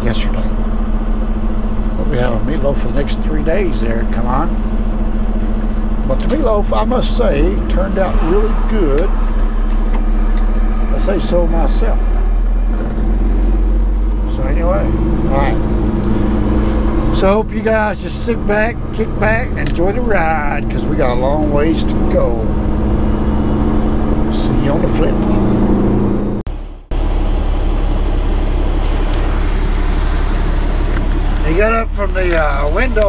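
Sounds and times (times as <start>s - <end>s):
road noise: 0.0s - 33.0s
truck diesel engine drone: 0.0s - 33.0s.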